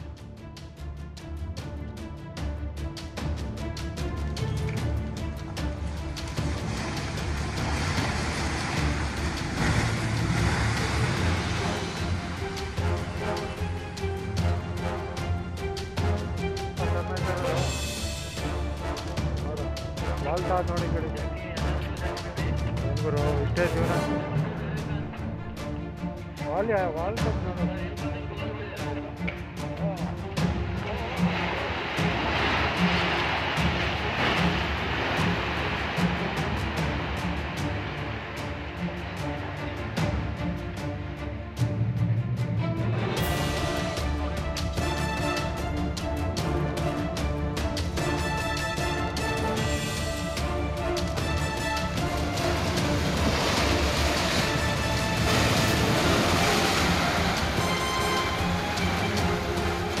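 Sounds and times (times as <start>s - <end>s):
background music with steady beat: 0.0s - 60.0s
building collapsing roar: 5.3s - 14.0s, 30.6s - 40.5s, 49.0s - 60.0s.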